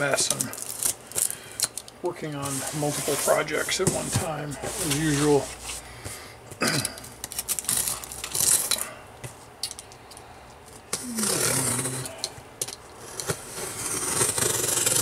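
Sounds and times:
utility knife slitting box tape: 0:13.0 - 0:15.0.

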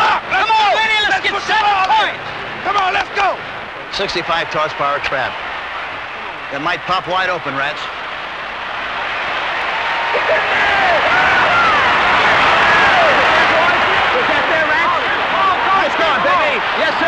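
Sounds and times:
voices shouting: 0:00.0 - 0:06.6, 0:07.8 - 0:17.0
stadium crowd cheering: 0:00.0 - 0:17.0.

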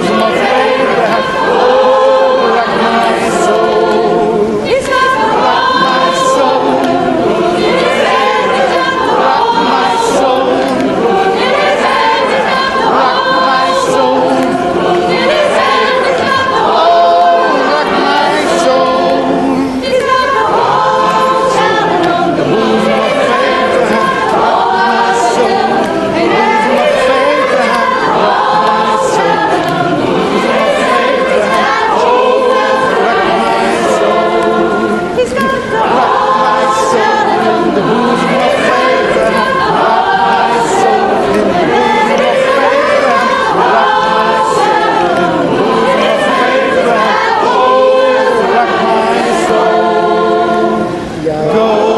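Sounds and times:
choir singing a cappella: 0:00.0 - 0:51.9.

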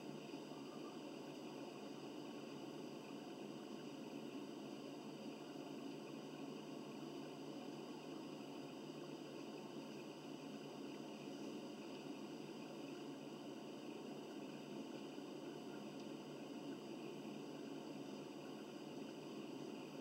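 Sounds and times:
room tone hiss: 0:00.0 - 0:20.0.

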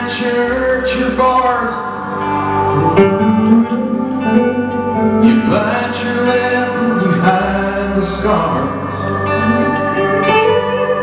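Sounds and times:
electric guitars strumming chords: 0:00.0 - 0:11.0.

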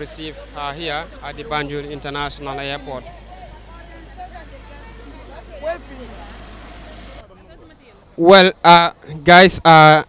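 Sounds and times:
idling vehicle hum: 0:00.0 - 0:09.4.

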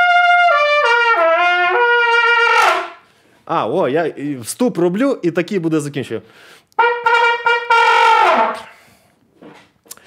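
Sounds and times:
trumpet note sliding down: 0:00.0 - 0:03.0, 0:06.8 - 0:08.8.

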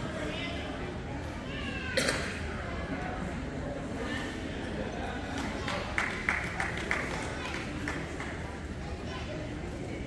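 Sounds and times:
murmur of people talking: 0:00.0 - 0:10.0.

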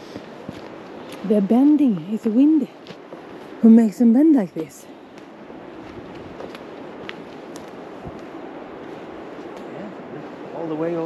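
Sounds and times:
wind through pine trees: 0:00.0 - 0:11.0.

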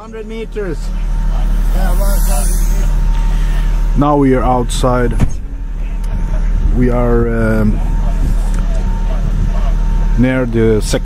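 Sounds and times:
faint voices: 0:00.0 - 0:11.0
low rumble on a boat: 0:00.0 - 0:11.0.

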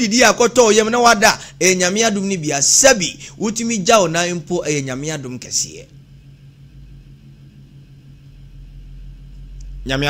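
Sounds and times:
low electrical hum: 0:00.0 - 0:10.0
microphone hiss: 0:00.0 - 0:10.0.

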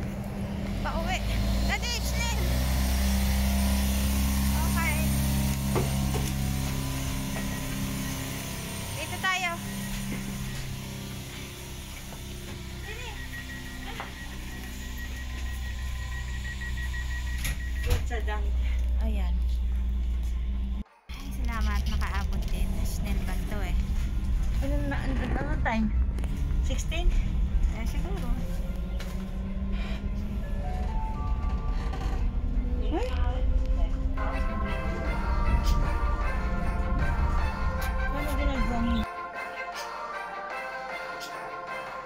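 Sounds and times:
train humming: 0:00.0 - 0:39.8
women talking: 0:00.8 - 0:02.5, 0:04.5 - 0:05.2, 0:09.0 - 0:09.7, 0:12.8 - 0:14.2, 0:17.8 - 0:19.6, 0:21.1 - 0:23.9, 0:26.6 - 0:28.6, 0:32.8 - 0:34.8, 0:38.0 - 0:39.1.

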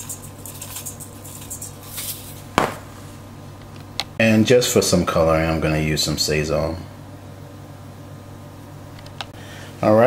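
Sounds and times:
seasoning shaker shakes: 0:00.0 - 0:02.5
sharp knock: 0:02.6 - 0:03.1.

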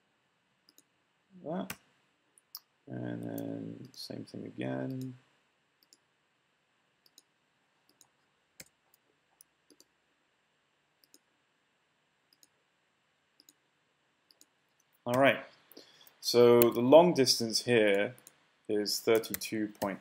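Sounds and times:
computer mouse clicks: 0:00.7 - 0:00.9, 0:07.0 - 0:07.3, 0:07.9 - 0:09.9, 0:11.0 - 0:11.2, 0:12.3 - 0:12.5, 0:13.4 - 0:13.6, 0:14.3 - 0:15.0, 0:16.0 - 0:16.8, 0:19.1 - 0:20.0.

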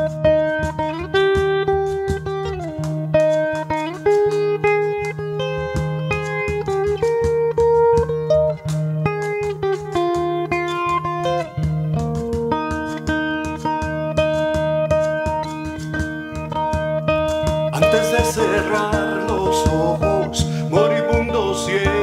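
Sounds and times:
picked guitar melody: 0:00.0 - 0:22.0
finger taps on frame drum: 0:00.3 - 0:17.8.

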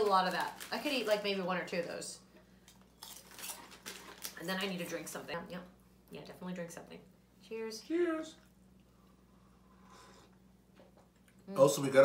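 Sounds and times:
chip packet crackling: 0:00.0 - 0:02.0, 0:03.0 - 0:04.8.

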